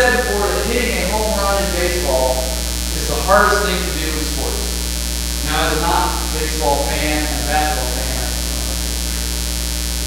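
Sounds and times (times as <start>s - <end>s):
electrical mains hum: 0.0s - 10.0s
even hiss: 0.0s - 10.0s.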